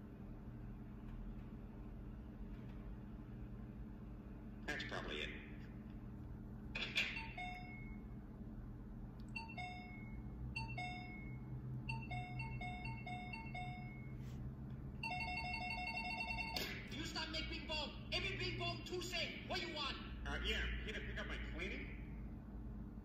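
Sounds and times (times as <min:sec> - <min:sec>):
electronic door chime beeping: 0:07.0 - 0:08.1, 0:09.4 - 0:14.2.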